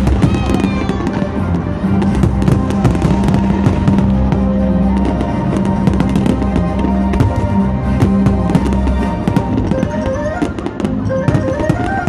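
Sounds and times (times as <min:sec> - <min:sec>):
fireworks bangs and crackling: 0:00.0 - 0:12.0
music: 0:00.0 - 0:12.0.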